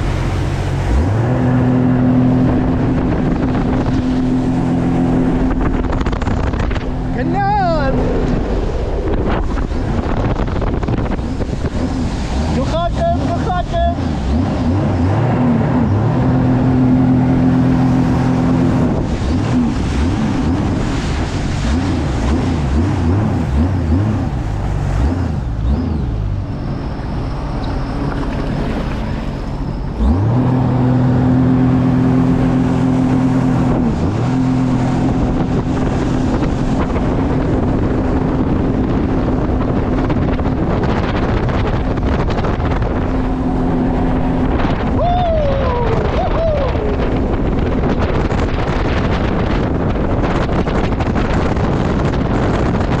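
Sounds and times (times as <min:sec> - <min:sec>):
personal watercraft engine running: 0:00.0 - 0:53.0
wind rushing: 0:00.0 - 0:53.0
water spray rushing: 0:07.6 - 0:15.6, 0:16.5 - 0:26.0.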